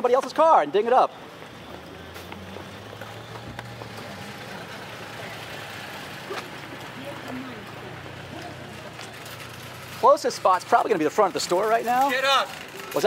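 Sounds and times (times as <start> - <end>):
vehicles humming: 0.0 - 13.0.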